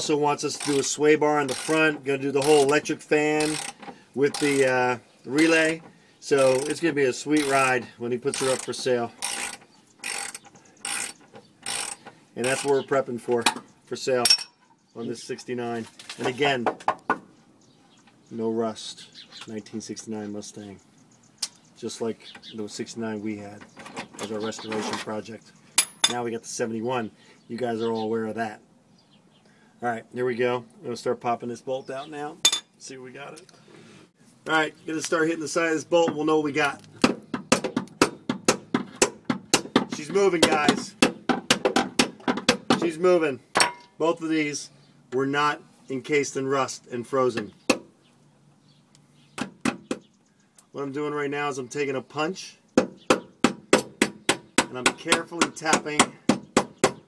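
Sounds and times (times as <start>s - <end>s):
hammer striking metal bolt: 25.8s - 26.2s.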